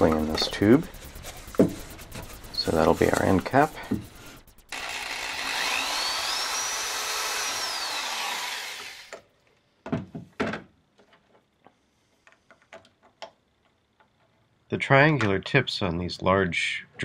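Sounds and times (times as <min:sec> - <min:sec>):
electric drill whining: 0:04.7 - 0:09.2.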